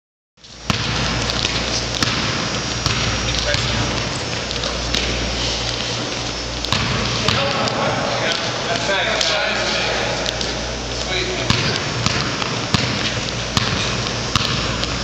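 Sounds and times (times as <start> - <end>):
basketball bouncing on court: 0.4 - 5.3, 6.0 - 15.0
echoing gym din: 0.6 - 6.1, 6.7 - 15.0
players' voices: 3.1 - 14.0.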